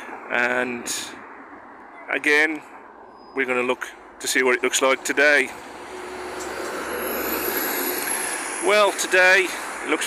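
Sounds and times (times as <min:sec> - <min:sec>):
road vehicle passing: 0:00.0 - 0:10.0.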